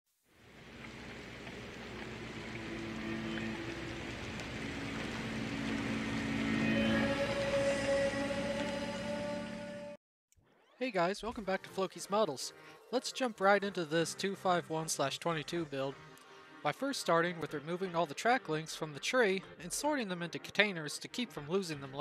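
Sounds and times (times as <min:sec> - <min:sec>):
rushing noisy swell: 0:02.2 - 0:09.9
sustained held tones: 0:02.6 - 0:10.0.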